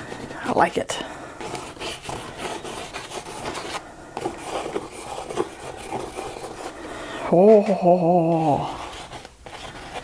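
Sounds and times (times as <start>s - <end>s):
pencil scribbling on paper: 1.4s - 6.8s, 8.6s - 10.0s.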